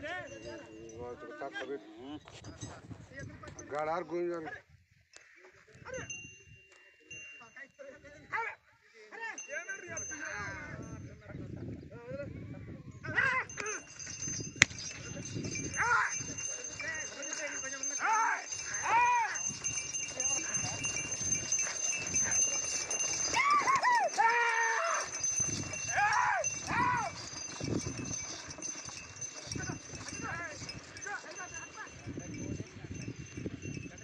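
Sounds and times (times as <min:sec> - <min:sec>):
men hollering and shouting: 0:15.7 - 0:27.5.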